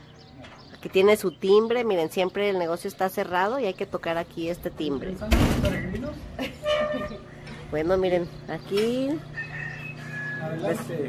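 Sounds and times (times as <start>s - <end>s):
door thump: 5.3s - 5.8s.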